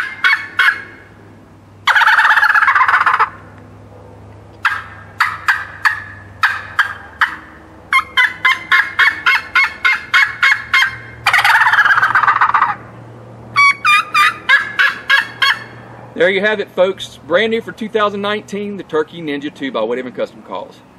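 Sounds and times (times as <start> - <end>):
rattling gobble: 0.0 - 1.0, 1.8 - 3.4, 4.6 - 12.8, 13.6 - 15.7
turkey call yelps: 0.0 - 1.1, 1.8 - 3.4, 4.6 - 12.8, 13.6 - 15.8.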